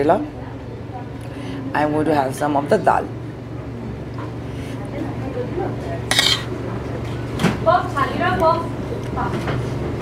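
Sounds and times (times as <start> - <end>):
cutlery clinking on metal plate: 6.1 - 6.5.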